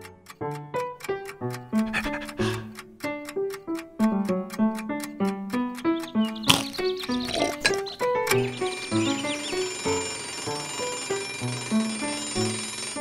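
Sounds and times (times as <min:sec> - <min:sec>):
chamber music violin cello piano: 0:05.8 - 0:13.0.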